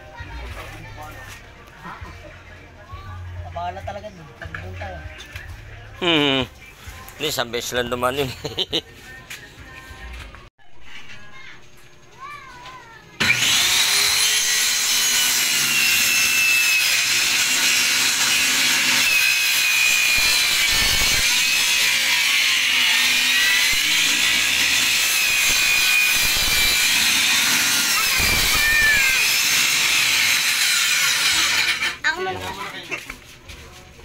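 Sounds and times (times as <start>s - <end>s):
circular saw cutting wood: 13.2s - 32.1s.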